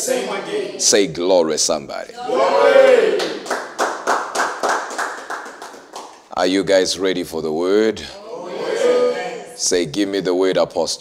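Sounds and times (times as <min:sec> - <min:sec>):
hands clapping: 0:03.1 - 0:06.4.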